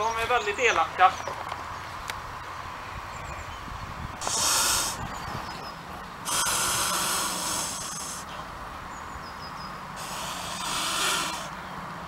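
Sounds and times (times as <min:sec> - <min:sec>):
goose hissing: 0:04.2 - 0:05.0, 0:06.2 - 0:08.3, 0:10.0 - 0:11.6.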